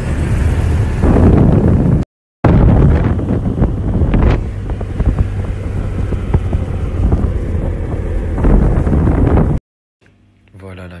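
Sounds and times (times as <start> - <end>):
low rumble of wind on microphone: 0.0 - 9.6.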